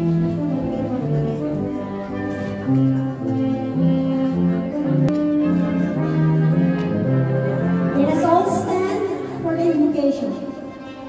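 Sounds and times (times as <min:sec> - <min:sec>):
slow instrumental music: 0:00.0 - 0:11.0.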